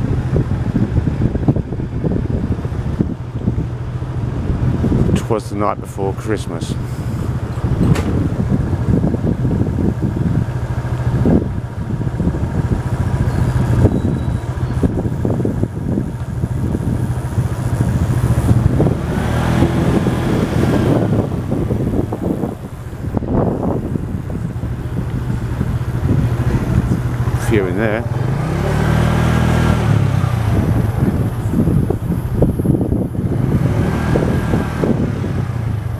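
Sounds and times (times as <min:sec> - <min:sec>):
wind and road noise: 0:00.0 - 0:35.9
scooter engine running: 0:06.6 - 0:35.9.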